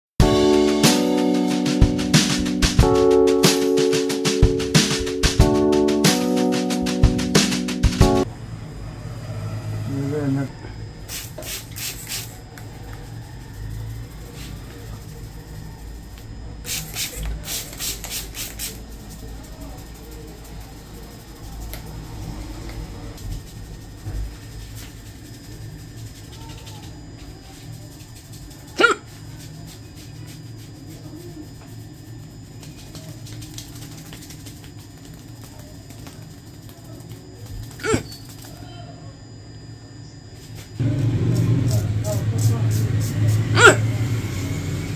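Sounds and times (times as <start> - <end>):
rapid crisp sounds: 0.2 - 8.3, 11.1 - 38.8
steady low hum: 0.2 - 44.9.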